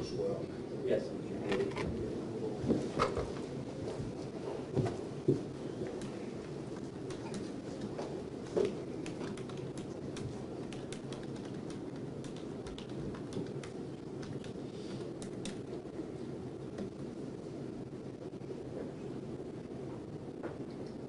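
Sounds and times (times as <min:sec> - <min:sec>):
low background murmur: 0:00.0 - 0:21.0.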